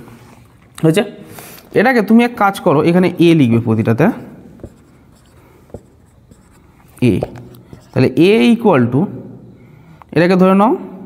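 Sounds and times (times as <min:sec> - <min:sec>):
marker scratching on whiteboard: 0:04.4 - 0:08.2.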